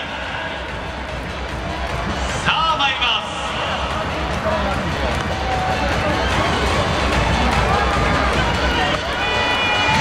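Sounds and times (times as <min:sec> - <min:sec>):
spectators talking nearby: 0:00.0 - 0:10.0
stadium crowd hubbub: 0:00.0 - 0:10.0.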